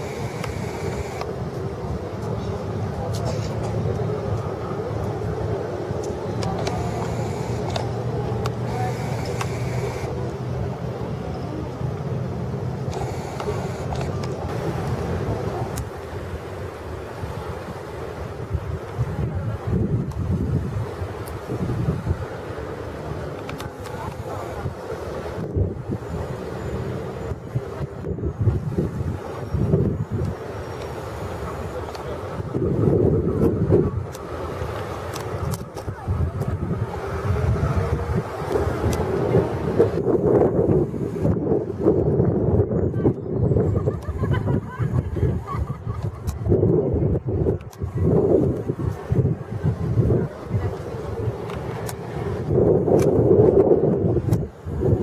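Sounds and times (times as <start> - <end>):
faint distant voices: 0.0 - 16.4, 22.2 - 40.2, 46.7 - 52.9
wind gusting on microphone: 0.0 - 55.0.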